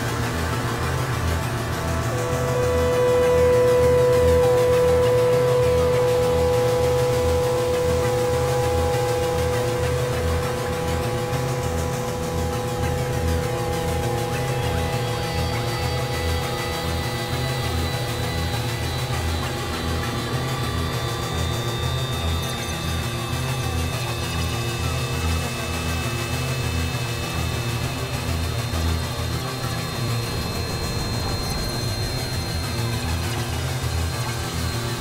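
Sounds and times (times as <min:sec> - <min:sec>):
ambient synthesizer music: 0:00.0 - 0:35.0.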